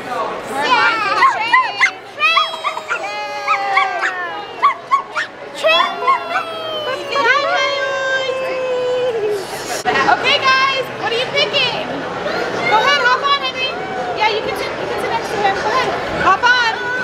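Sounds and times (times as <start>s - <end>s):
children squealing and calling: 0.6s - 9.4s
long falling held cries: 2.2s - 4.4s, 5.6s - 7.3s.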